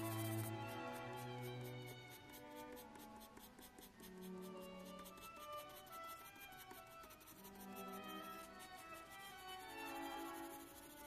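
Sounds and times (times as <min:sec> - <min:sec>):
pencil scratching on paper: 0:00.0 - 0:11.0
quiet background music: 0:00.0 - 0:11.0.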